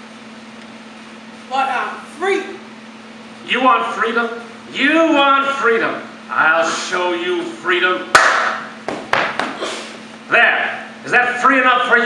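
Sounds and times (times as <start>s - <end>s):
sharp blows of a staged beating: 8.1s - 9.6s.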